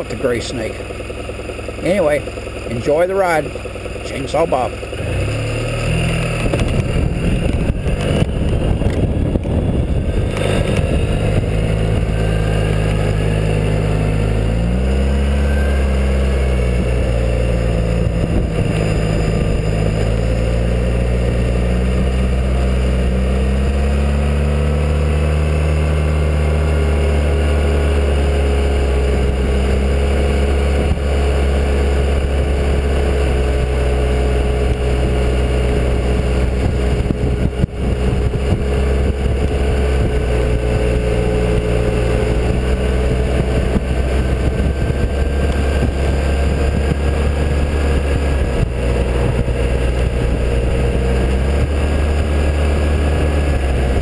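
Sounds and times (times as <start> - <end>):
scooter engine running: 0.0 - 54.0
wind and road noise: 0.0 - 54.0.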